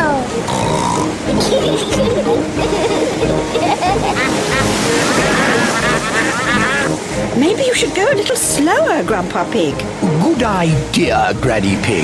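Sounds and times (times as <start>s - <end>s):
rushing water and waves: 0.0s - 12.0s
children laughing: 1.3s - 7.0s.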